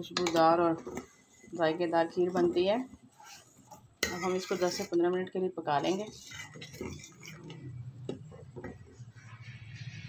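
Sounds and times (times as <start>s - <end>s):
metal ladle tapping steel pot: 0.0s - 0.7s.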